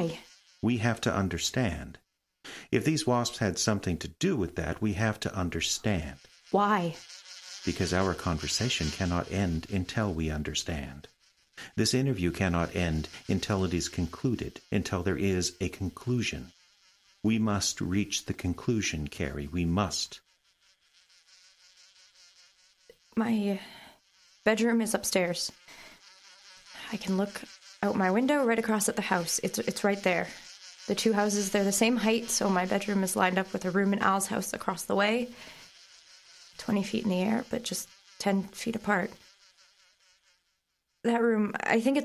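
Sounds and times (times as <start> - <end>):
wasp buzzing: 0.0 - 42.0.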